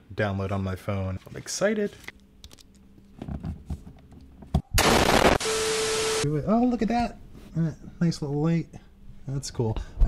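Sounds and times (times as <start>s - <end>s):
faint clicks and handling noise: 1.2s - 4.6s
loud explosion blast: 4.8s - 5.4s.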